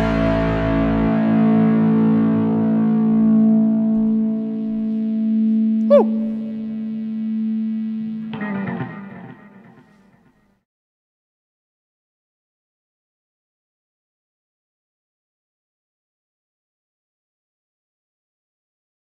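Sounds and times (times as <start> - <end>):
distorted electric guitar chord: 0.0 - 10.2
scratchy guitar strum: 5.9 - 7.3, 7.9 - 10.1.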